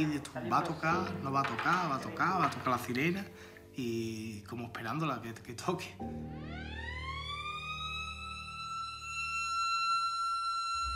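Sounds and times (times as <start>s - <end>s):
alarm siren wailing: 6.0s - 10.9s.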